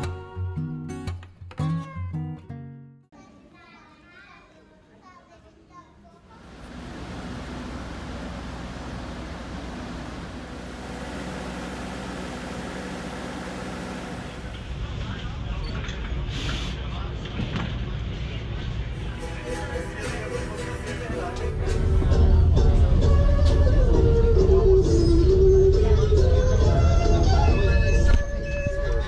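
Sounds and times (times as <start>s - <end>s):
diesel engine drone: 6.4s - 15.6s
air hiss: 16.3s - 16.8s.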